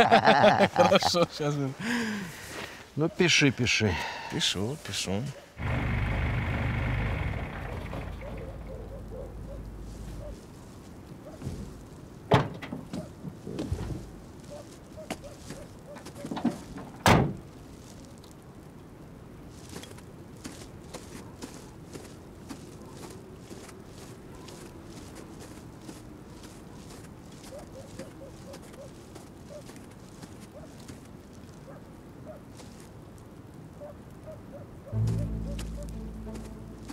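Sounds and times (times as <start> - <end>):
van engine humming: 5.6 - 10.4, 35.0 - 36.9
footsteps crunching in snow: 9.3 - 12.0, 13.5 - 16.8, 19.5 - 31.7, 32.5 - 33.0, 34.9 - 36.9.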